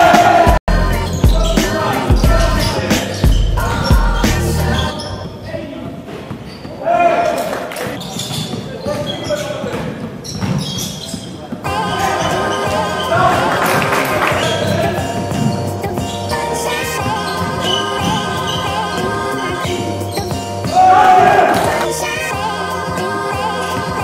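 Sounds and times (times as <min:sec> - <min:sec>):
steady bass line: 0:00.0 - 0:04.9
background music: 0:00.0 - 0:05.0, 0:11.6 - 0:24.0.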